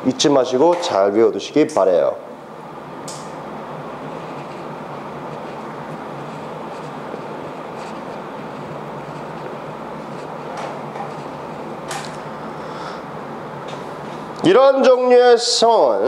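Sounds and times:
room background hiss: 0.0s - 16.0s.

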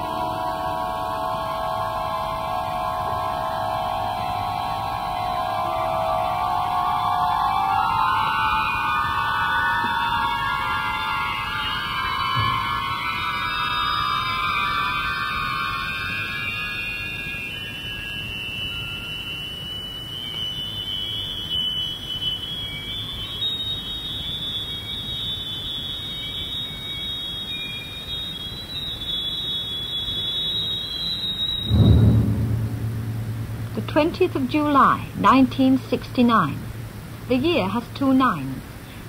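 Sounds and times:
electronic whistling tones: 0.2s - 32.2s
steady low noise: 31.6s - 39.0s
loud low thump: 31.7s - 35.2s.

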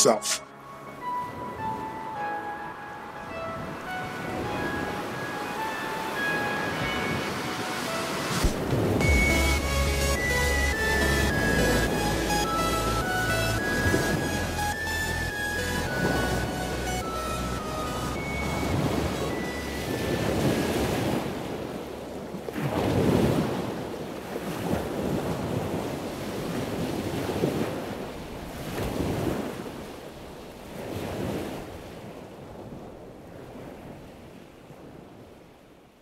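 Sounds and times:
ocean waves washing in: 0.0s - 36.0s
music: 0.2s - 20.8s.

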